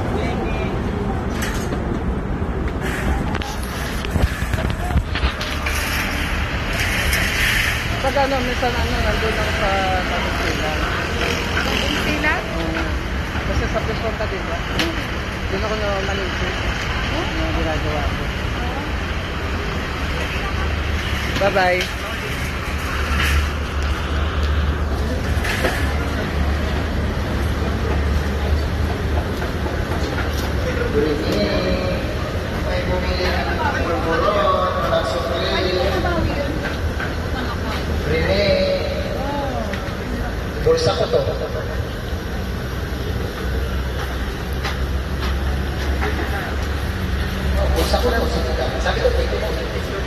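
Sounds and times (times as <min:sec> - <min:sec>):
road traffic rumbling: 0:00.0 - 0:50.0
people talking: 0:08.0 - 0:18.9, 0:29.9 - 0:41.8.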